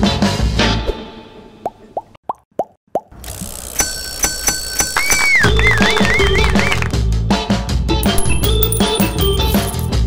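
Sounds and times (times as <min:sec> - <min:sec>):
upbeat drum-backed music: 0:05.4 - 0:10.0
music with bell-like tones: 0:08.0 - 0:10.0.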